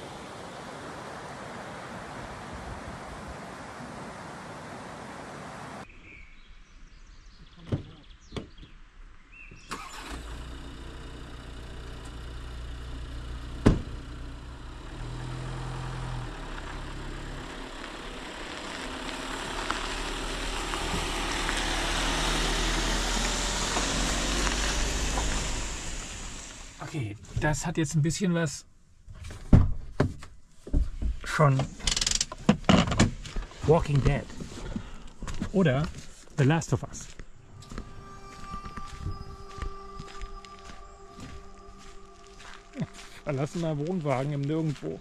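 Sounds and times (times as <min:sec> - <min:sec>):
road or rain hiss: 0:00.0 - 0:05.9, 0:09.7 - 0:26.9
diesel engine starting and running: 0:09.6 - 0:27.1, 0:33.2 - 0:45.0.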